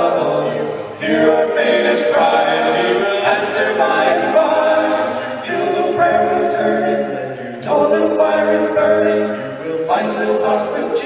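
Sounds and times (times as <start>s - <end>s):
men singing a cappella harmony: 0.0s - 11.0s.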